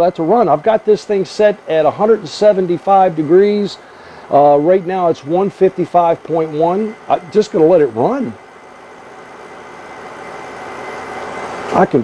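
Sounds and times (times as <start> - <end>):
water chiller running: 0.0 - 12.0.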